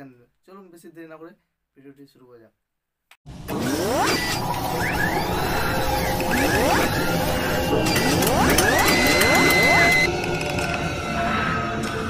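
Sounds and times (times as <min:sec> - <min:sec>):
mechanical clicking and whirring: 0:03.4 - 0:10.8
high tone: 0:05.2 - 0:10.1.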